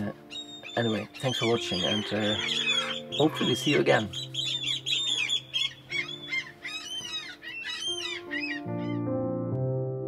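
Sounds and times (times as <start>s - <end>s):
birds calling: 0.0s - 9.2s
music with keyboard chords: 0.0s - 10.0s.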